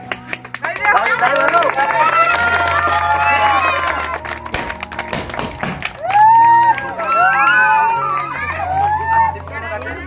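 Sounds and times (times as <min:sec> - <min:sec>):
crowd clapping: 0:00.0 - 0:10.0
music playing: 0:00.0 - 0:10.0.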